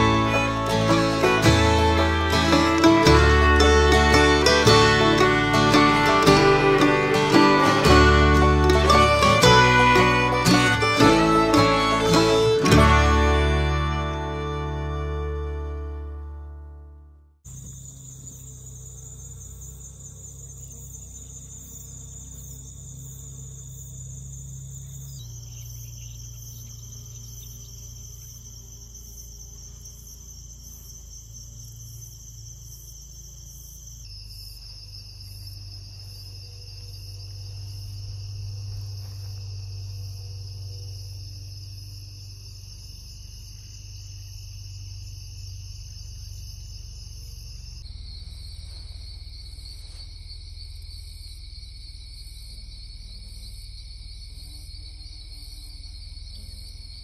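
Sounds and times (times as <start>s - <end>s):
field insects trilling: 0.0s - 15.5s, 17.5s - 57.0s.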